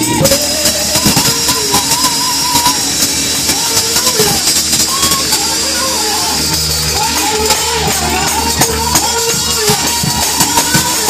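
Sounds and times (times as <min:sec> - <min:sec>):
congregation clapping: 0:00.0 - 0:11.0
drum beat: 0:00.0 - 0:11.0
gospel band playing: 0:00.0 - 0:11.0.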